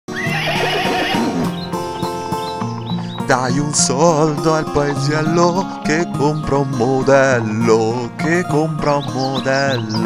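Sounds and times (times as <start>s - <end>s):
horse whinnying: 0.1s - 1.5s
acoustic guitar music: 0.1s - 10.0s.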